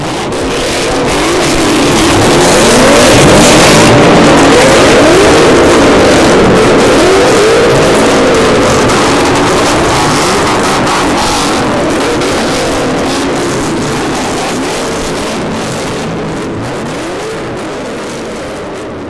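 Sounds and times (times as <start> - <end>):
car engine revving: 0.0 - 19.0.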